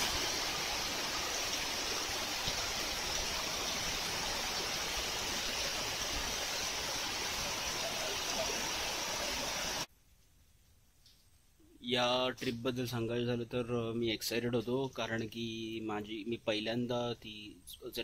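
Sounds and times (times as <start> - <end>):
heavy rain on paving and foliage: 0.0 - 9.9.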